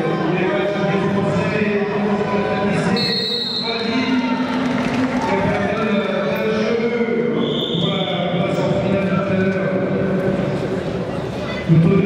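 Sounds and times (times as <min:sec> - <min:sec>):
voices in a hall: 0:00.0 - 0:12.0.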